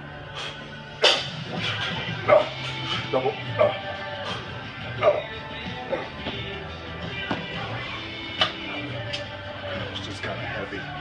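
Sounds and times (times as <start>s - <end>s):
background music: 0.0s - 11.0s
man grunting: 4.9s - 5.3s.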